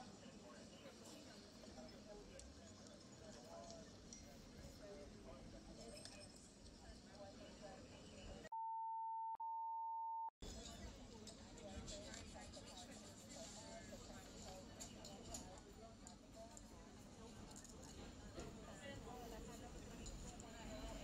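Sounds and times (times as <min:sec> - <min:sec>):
faint indistinct voices: 0:00.0 - 0:08.5, 0:10.4 - 0:21.0
muffled background noise: 0:00.0 - 0:08.6, 0:10.4 - 0:21.0
high-pitched censor bleep: 0:08.5 - 0:10.3.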